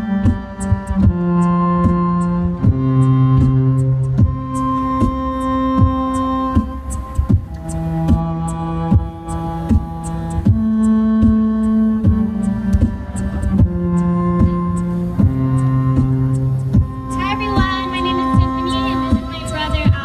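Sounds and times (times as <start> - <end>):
violin and keyboard music: 0.0 - 20.0.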